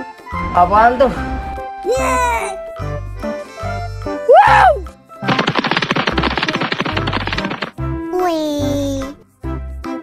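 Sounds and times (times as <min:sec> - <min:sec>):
fast rattle of clicks: 0:05.3 - 0:07.8
children's music with bass beat: 0:05.7 - 0:10.0.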